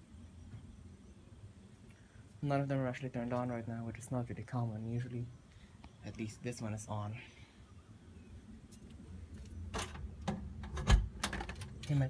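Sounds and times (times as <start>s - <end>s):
handling clicks and knocks: 9.4s - 12.0s.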